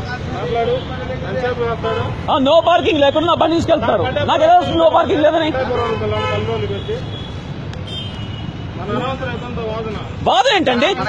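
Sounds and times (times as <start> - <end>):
men talking: 0.0 - 7.4, 8.6 - 11.0
street traffic: 0.0 - 11.0.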